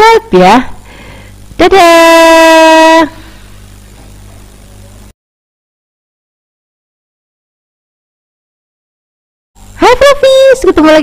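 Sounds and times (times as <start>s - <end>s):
faint low hum: 0.0s - 5.1s
woman calling out long note: 1.6s - 3.2s.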